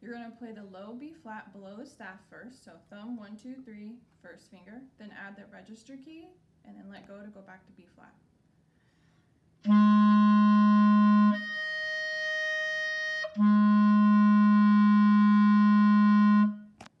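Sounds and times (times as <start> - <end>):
clarinet playing: 9.6 - 16.8.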